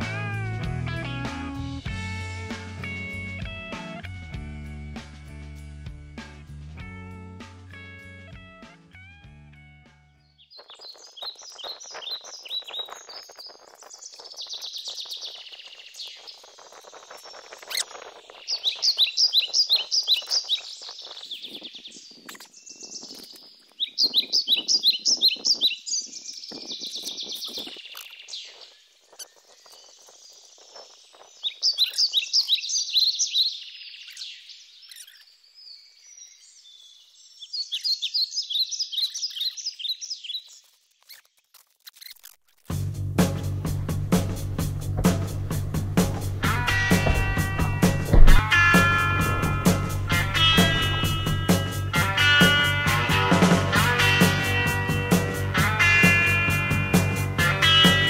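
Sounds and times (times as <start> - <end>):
bird chirping: 10.2 - 42.4, 43.8 - 52.9.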